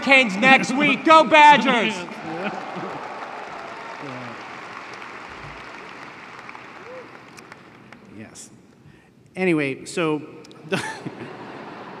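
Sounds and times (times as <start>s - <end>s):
crowd applauding and cheering: 0.0s - 8.1s.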